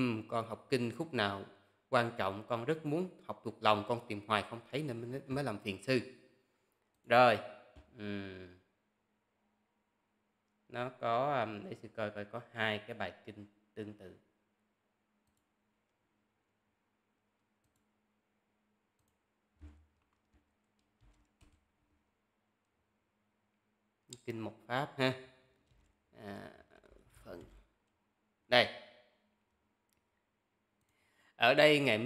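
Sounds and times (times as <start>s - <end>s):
computer mouse clicks: 15.2s - 15.5s, 17.6s - 17.9s, 19.0s - 21.7s.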